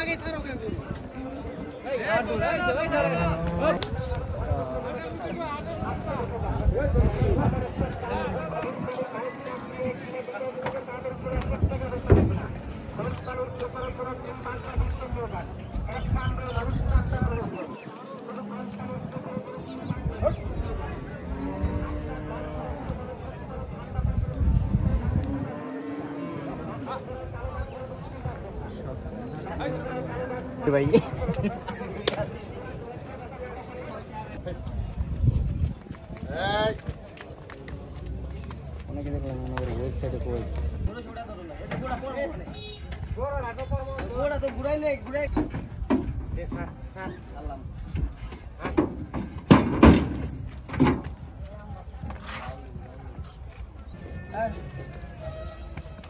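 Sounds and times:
handlers' voices: 0.0 - 56.0
cow mooing: 25.3 - 26.8.

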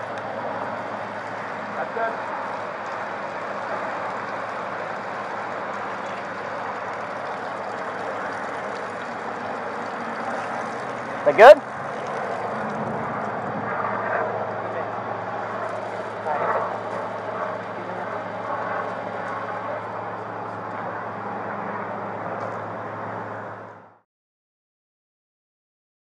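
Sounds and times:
vehicles humming: 0.0 - 24.0.

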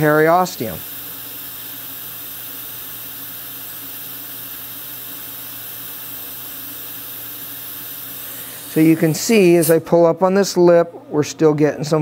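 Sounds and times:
dental suction hiss: 0.0 - 9.9.

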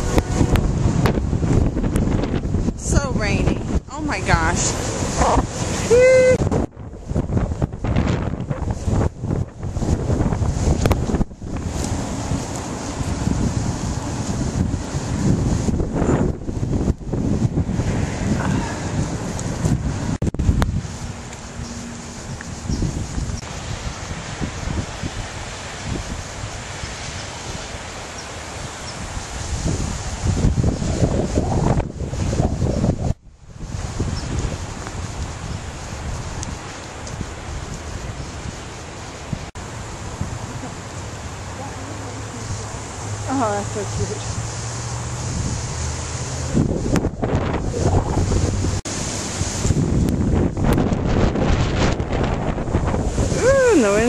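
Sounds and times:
wind gusting across microphone: 0.0 - 54.0.

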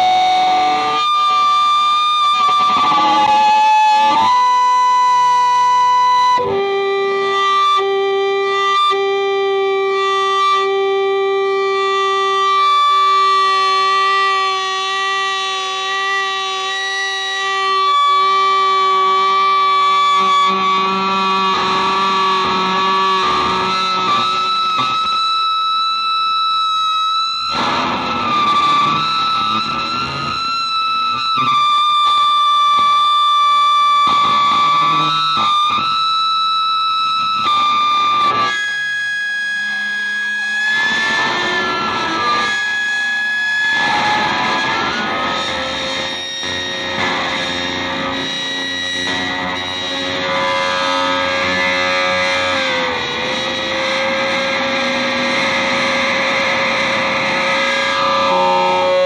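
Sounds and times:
dense distorted guitar noise: 0.0 - 59.0
electric guitar with effects: 0.0 - 59.0.

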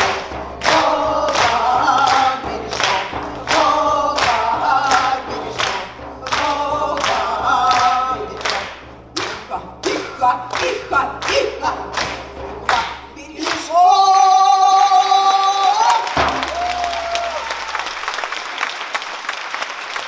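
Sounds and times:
frame drum beat: 0.0 - 15.4, 16.1 - 18.4
voices singing together: 0.0 - 16.2.

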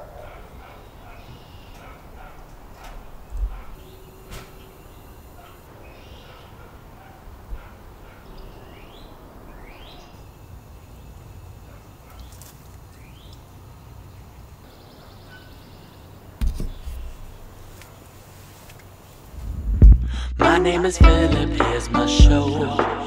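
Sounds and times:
small birds chirping: 0.0 - 19.2
steady low rumble: 19.3 - 22.4.

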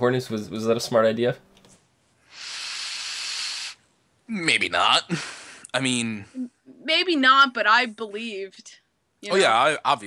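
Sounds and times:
steady hiss: 2.2 - 3.9.

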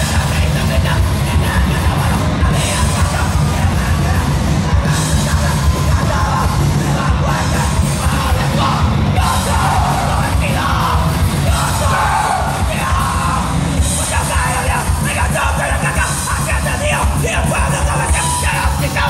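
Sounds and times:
drums: 0.0 - 19.0
loud guitars: 0.0 - 19.0
shouted vocals: 4.8 - 19.0.

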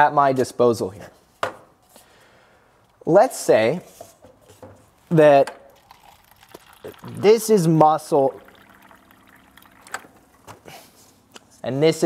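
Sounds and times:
faint water trickle: 5.0 - 11.3.

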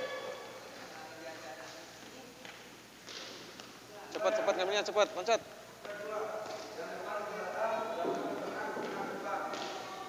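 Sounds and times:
indistinct voices: 0.0 - 1.0.

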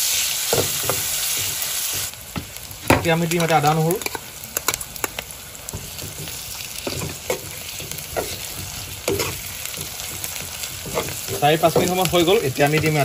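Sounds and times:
onions sizzling in hot oil: 0.0 - 13.0
metal spoon stirring and scraping: 5.7 - 13.0.

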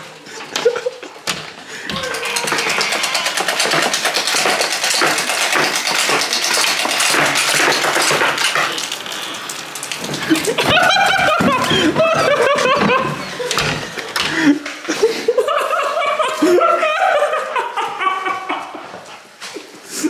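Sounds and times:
heavy rain on concrete: 2.1 - 14.6.

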